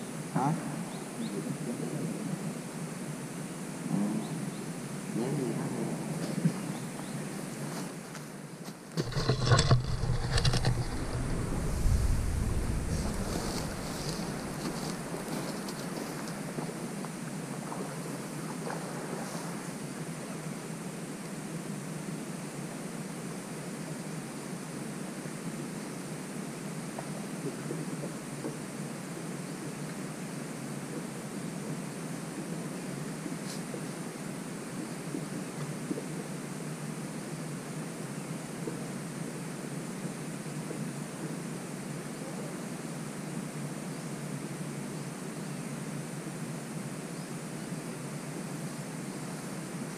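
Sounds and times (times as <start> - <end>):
camera handling bumps and rustling: 8.9 - 16.1
wind on microphone: 9.0 - 16.7.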